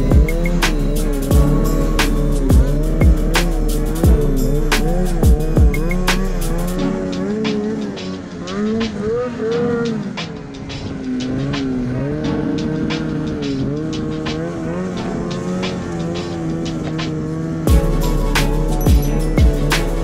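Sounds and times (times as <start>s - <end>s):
background music with steady beat: 0.0s - 20.0s
snowmobile engine revving: 0.0s - 20.0s.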